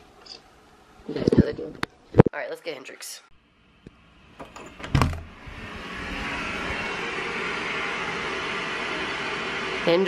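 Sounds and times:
white-noise machine hiss: 0:00.0 - 0:10.0
door latch clicking: 0:04.4 - 0:05.3.

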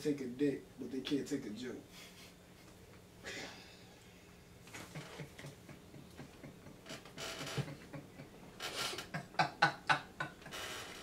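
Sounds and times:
men laughing quietly: 0:04.6 - 0:11.0.

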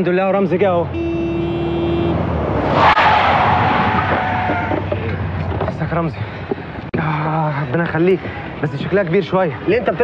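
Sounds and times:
tyres squealing under braking: 0:02.8 - 0:05.0.

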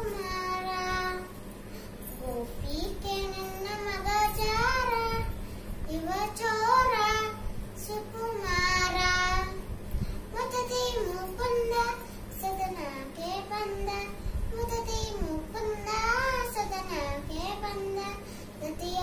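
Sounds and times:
girl singing devotional song: 0:00.0 - 0:19.0.

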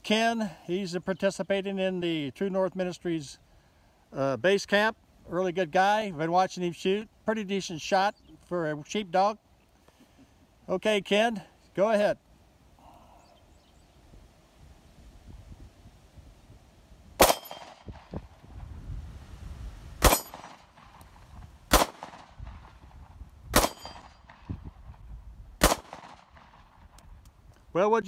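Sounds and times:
pistol shots: 0:17.2 - 0:18.1, 0:20.0 - 0:20.9, 0:21.7 - 0:22.7, 0:23.5 - 0:24.4, 0:25.6 - 0:26.6.

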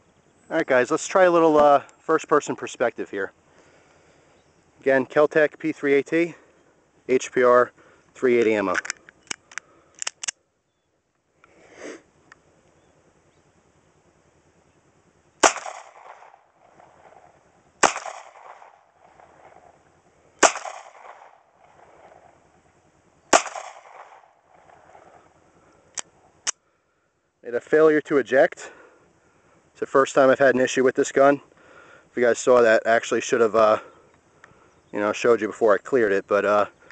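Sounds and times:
light gun clicks: 0:08.7 - 0:10.4
pistol shots with echo: 0:15.4 - 0:17.2, 0:17.8 - 0:19.7, 0:20.4 - 0:22.2, 0:23.3 - 0:24.9.

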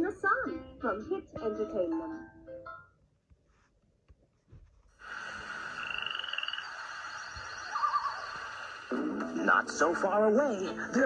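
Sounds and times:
steady tape hiss: 0:03.4 - 0:11.0
frogs croaking and trilling: 0:05.0 - 0:08.9.

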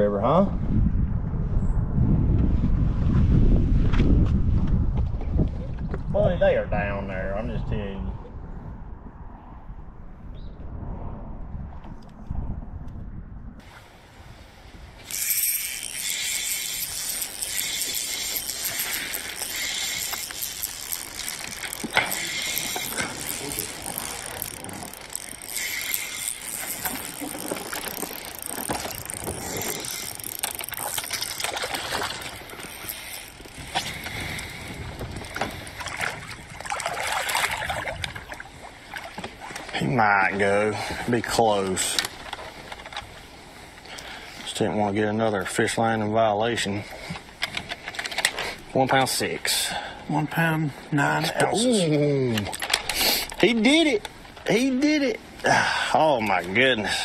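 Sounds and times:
low rumble: 0:07.6 - 0:14.2
fishing reel ratcheting: 0:15.0 - 0:38.2, 0:40.4 - 0:43.2, 0:52.4 - 0:54.8.

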